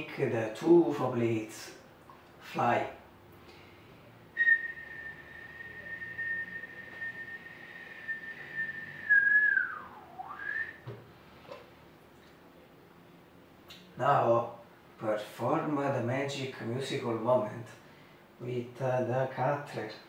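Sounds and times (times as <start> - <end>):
person whistling a high note: 4.4 - 10.8.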